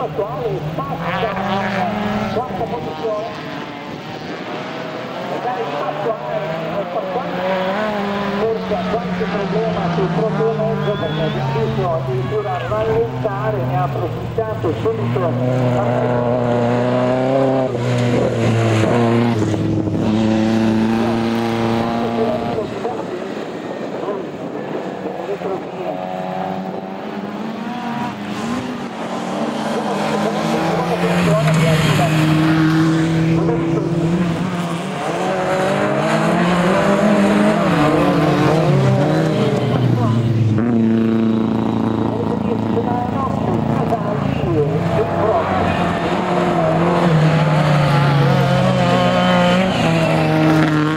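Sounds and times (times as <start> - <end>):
race car engines revving: 0.0 - 50.9.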